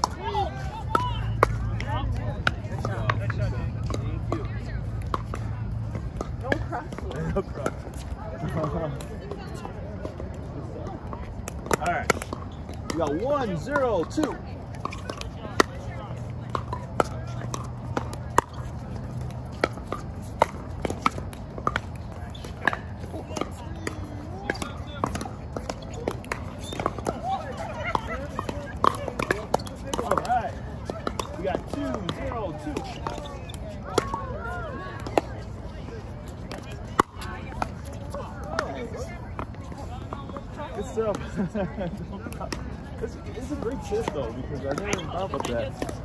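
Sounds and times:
faint players' voices: 0:00.0 - 0:46.0.

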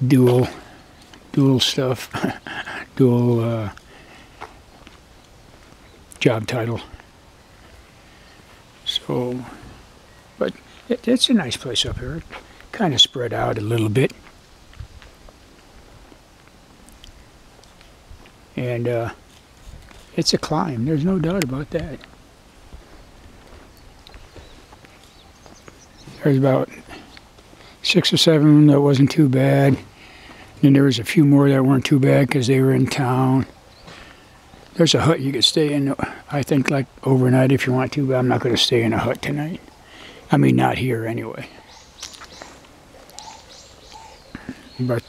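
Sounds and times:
birds calling: 0:00.0 - 0:45.0
footsteps walking: 0:03.7 - 0:09.8, 0:10.6 - 0:11.0, 0:11.9 - 0:12.8, 0:13.8 - 0:30.7, 0:32.2 - 0:34.9, 0:41.5 - 0:44.8
high bird chirps: 0:41.5 - 0:45.0.

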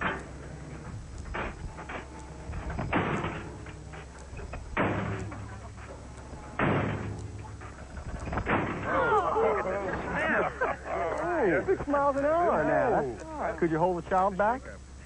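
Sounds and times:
crash sled loud thuds: 0:06.6 - 0:07.2.

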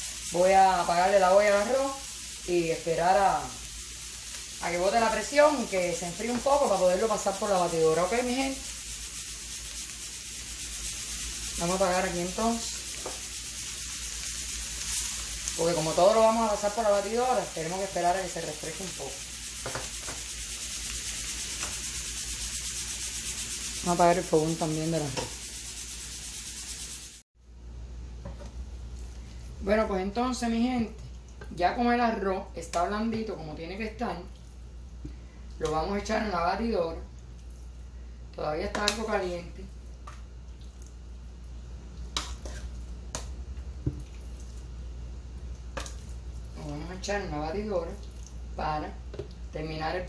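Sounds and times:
onions sizzling in a pan: 0:00.0 - 0:27.2.

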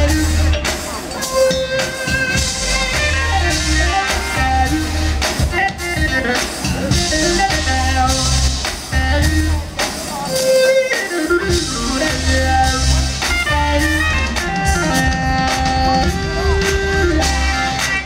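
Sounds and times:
pulsing bass line: 0:00.0 - 0:00.6, 0:02.3 - 0:05.2, 0:06.8 - 0:09.7, 0:11.4 - 0:17.9
drum kit: 0:00.0 - 0:18.0
keyboards: 0:00.0 - 0:18.0
saxophone: 0:00.0 - 0:18.0
electric guitar: 0:10.4 - 0:18.0.

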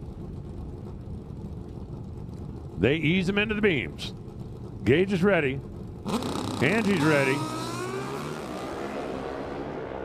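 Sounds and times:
drag racing motorcycles at full throttle: 0:01.9 - 0:10.0.

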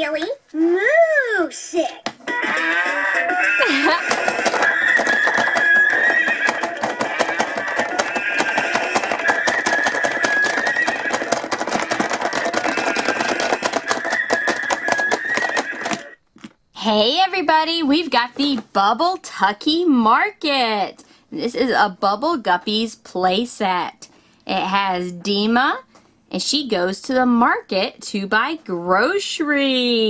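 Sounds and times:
electronic dance music from toy speaker: 0:02.2 - 0:16.1.

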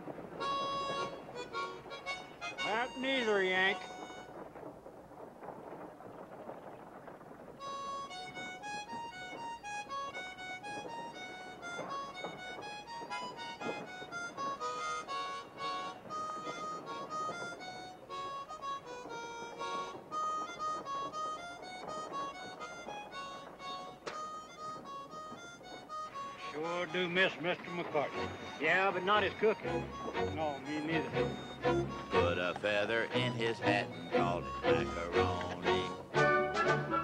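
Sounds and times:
steady background noise: 0:00.0 - 0:37.0
harmonica playing a tune: 0:00.4 - 0:04.3, 0:07.7 - 0:37.0.

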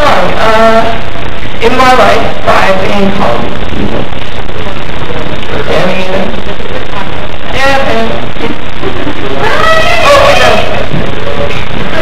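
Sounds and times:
steady hiss and hum: 0:00.0 - 0:12.0.

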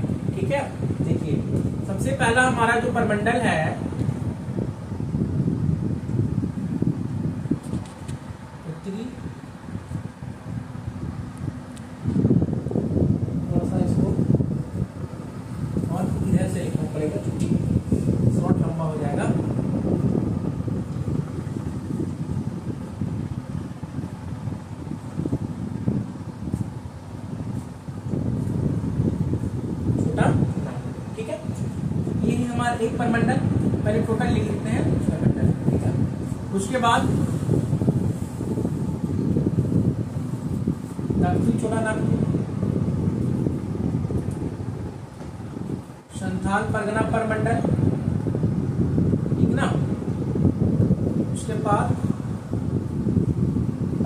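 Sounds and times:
wind rumble on microphone: 0:00.0 - 0:54.0.

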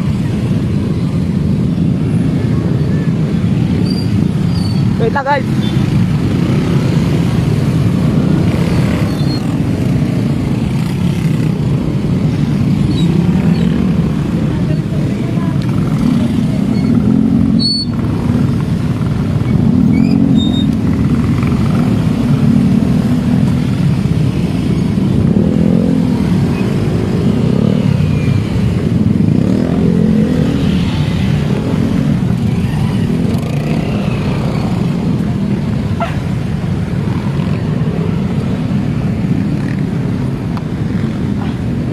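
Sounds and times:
motorcycle engines rumbling: 0:00.0 - 0:41.9.

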